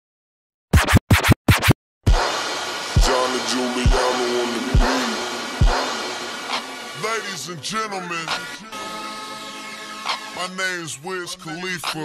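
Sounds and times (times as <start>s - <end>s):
record scratching: 0.7s - 7.1s.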